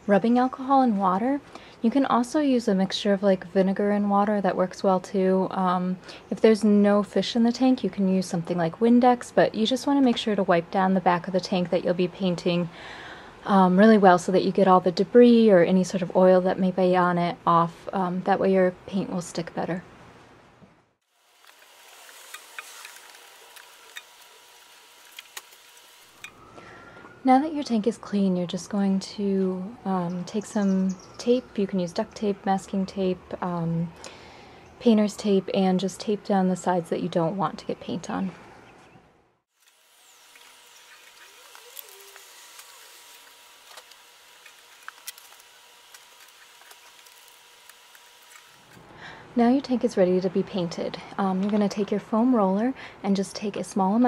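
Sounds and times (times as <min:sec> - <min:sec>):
outdoor background hiss: 0:00.0 - 0:54.0.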